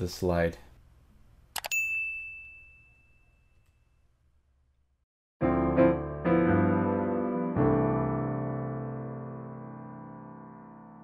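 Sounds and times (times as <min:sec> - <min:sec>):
high-pitched bell-like ding: 0:01.6 - 0:04.0.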